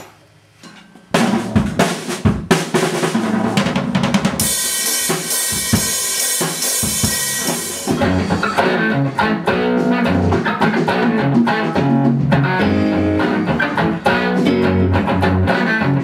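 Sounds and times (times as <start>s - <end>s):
cymbals: 4.4s - 8.8s.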